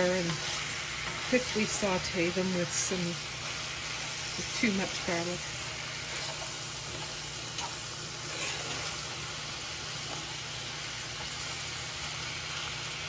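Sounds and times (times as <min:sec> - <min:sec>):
vegetables sizzling in a pan: 0:00.0 - 0:13.0.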